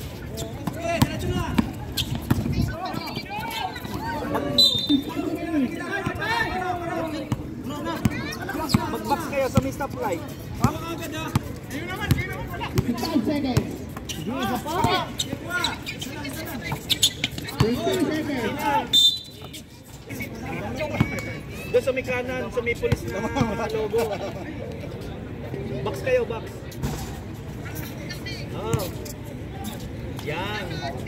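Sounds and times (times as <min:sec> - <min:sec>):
basketball bouncing on outdoor court: 0:00.0 - 0:19.6, 0:20.7 - 0:21.4, 0:28.6 - 0:29.0
players and spectators chattering: 0:00.0 - 0:31.0.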